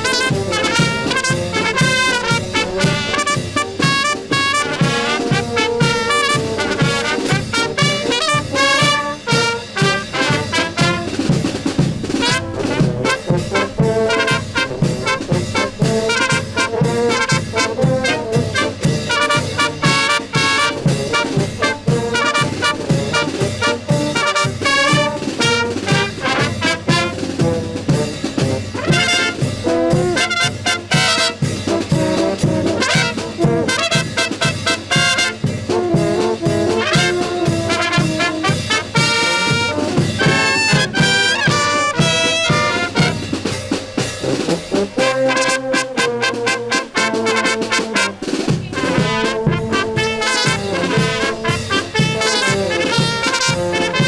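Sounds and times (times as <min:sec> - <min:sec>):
brass band playing dance tune: 0:00.0 - 0:54.0.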